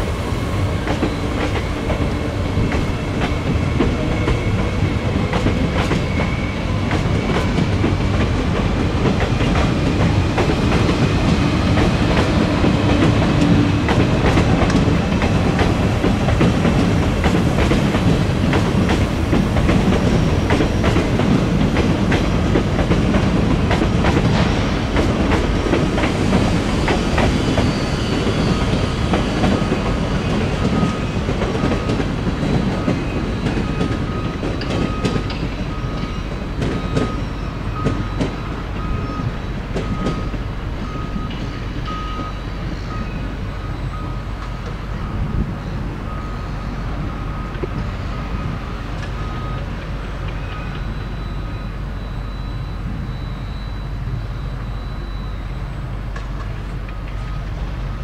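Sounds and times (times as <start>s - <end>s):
electric train rumbling: 0.0s - 58.0s.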